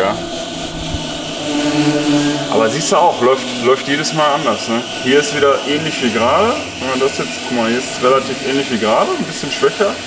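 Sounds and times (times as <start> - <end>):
level tones: 0.0 - 10.0
low mechanical hum: 0.0 - 10.0
person speaking: 1.8 - 10.0.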